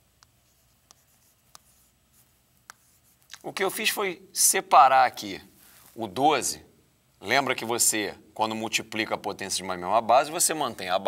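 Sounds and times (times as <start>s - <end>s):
chalk writing on chalkboard: 0.2s - 3.3s
chalk tapping: 0.2s - 3.4s.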